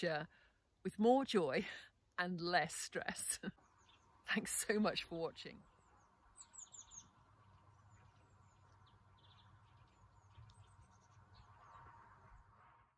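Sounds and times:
faint low background rumble: 0.0 - 12.9
small birds chirping: 2.8 - 12.5.

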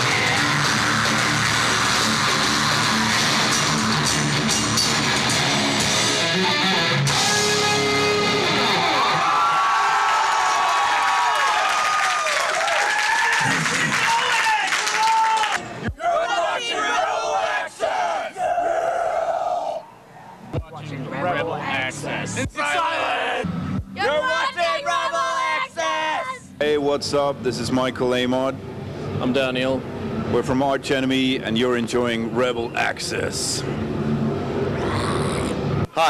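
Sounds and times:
distorted electric guitars: 0.0 - 9.3
drums: 0.0 - 9.7, 23.4 - 24.1
group of young people yelling: 8.8 - 19.8, 22.5 - 26.5.

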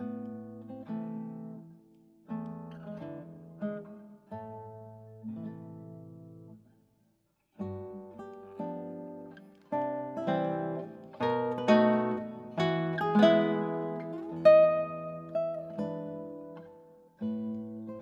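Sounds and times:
classical guitar playing: 0.0 - 6.8, 7.4 - 18.0.

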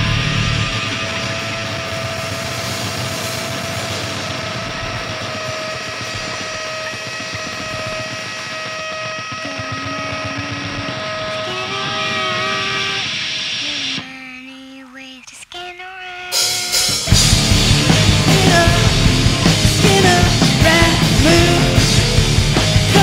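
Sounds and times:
distorted electric guitars drone: 0.0 - 14.4, 16.3 - 23.0
guitar feedback tones: 0.0 - 14.8, 16.3 - 23.0.

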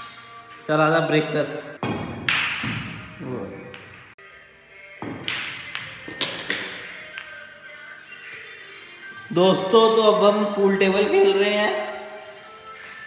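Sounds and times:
background music: 0.0 - 13.0
pool balls cracking and clattering: 5.0 - 7.3.

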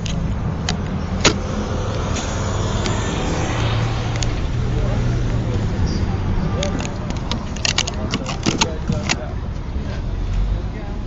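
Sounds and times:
sharp clicks and rattles: 0.0 - 3.0, 4.1 - 4.6, 5.3 - 9.4
faint voices: 0.0 - 11.0.

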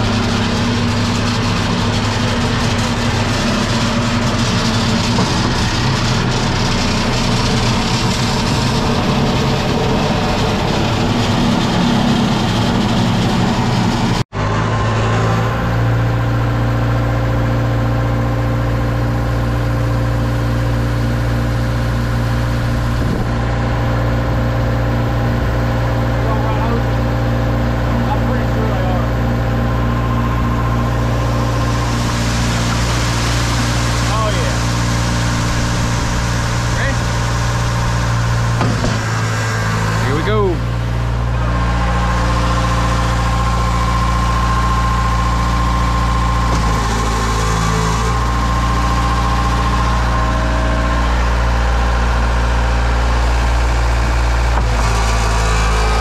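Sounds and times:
diesel engines droning: 0.0 - 56.0.

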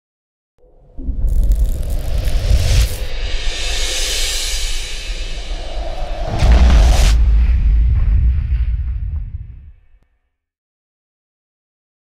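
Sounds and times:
cinematic music: 1.0 - 10.0
long whoosh: 1.0 - 10.0
deep boom: 4.8 - 10.0.

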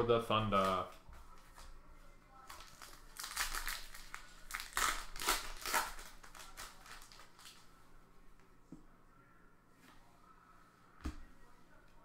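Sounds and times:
foil wrapper crinkling and tearing: 2.4 - 7.7.

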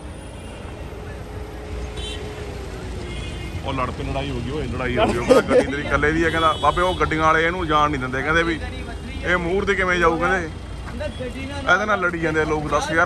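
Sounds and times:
traffic rumble: 0.0 - 13.0
men talking: 0.6 - 13.0.

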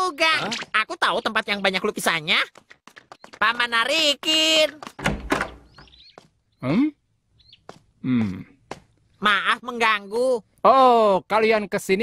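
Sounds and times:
heavy wooden door thudding open: 5.0 - 5.8.

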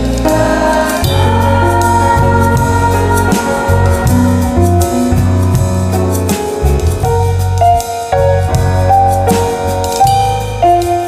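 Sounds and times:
choir singing held notes: 0.0 - 5.2
musical accompaniment: 0.0 - 11.0.

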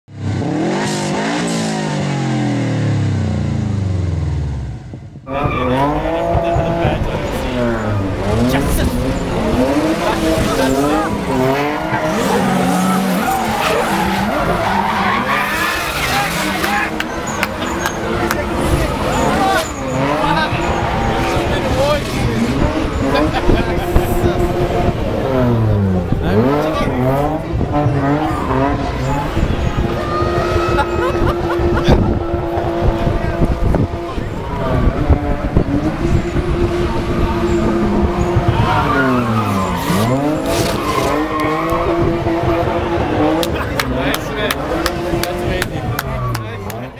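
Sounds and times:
car engines revving hard: 0.1 - 46.9
tyres squealing and skidding: 5.2 - 46.9.

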